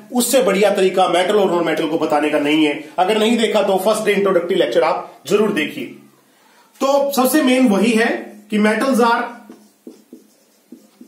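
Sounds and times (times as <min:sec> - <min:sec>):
marker writing on whiteboard: 0:09.2 - 0:11.0.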